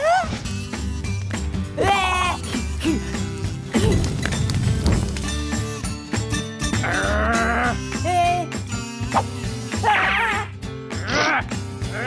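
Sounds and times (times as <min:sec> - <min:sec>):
cartoon background music: 0:00.0 - 0:12.0.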